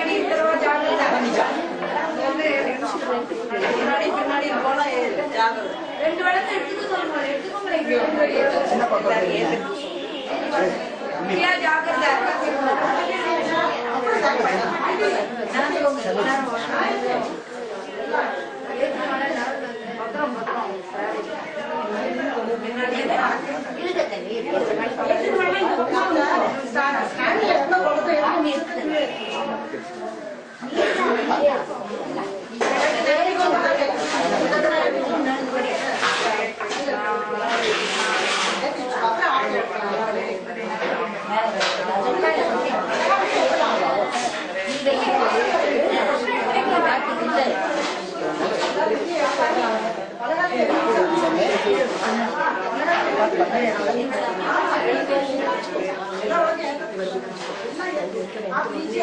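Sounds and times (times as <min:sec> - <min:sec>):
women chattering in a hall: 0:00.0 - 0:59.0.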